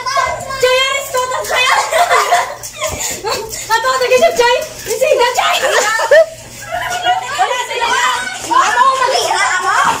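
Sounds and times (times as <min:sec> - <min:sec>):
children shouting as they play: 0:00.0 - 0:03.5, 0:04.8 - 0:10.0.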